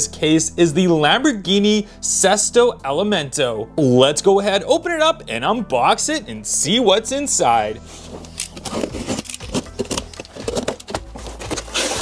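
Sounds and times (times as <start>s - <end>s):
cardboard rustling: 7.9s - 12.0s
cardboard rasp: 8.6s - 12.0s
utility knife cutting cardboard: 8.6s - 12.0s.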